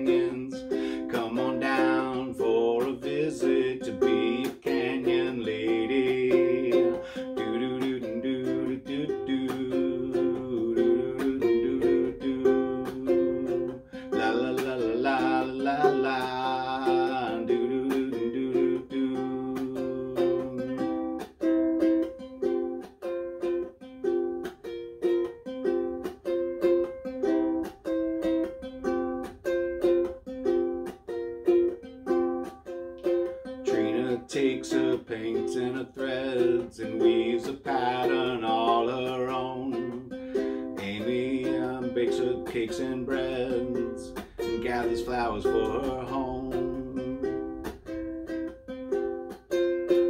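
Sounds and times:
ukulele strumming: 0:00.0 - 0:50.0.

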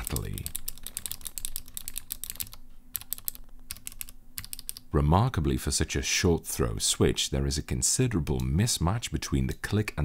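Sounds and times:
clicky keyboard typing: 0:00.0 - 0:04.9.

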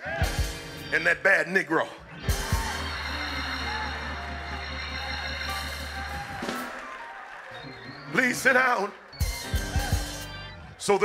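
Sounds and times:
held organ chords: 0:02.0 - 0:11.0.

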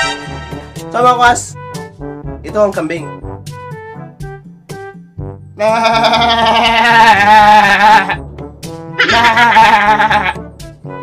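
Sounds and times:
man imitating goat bleat: 0:05.6 - 0:08.3, 0:09.0 - 0:10.4.

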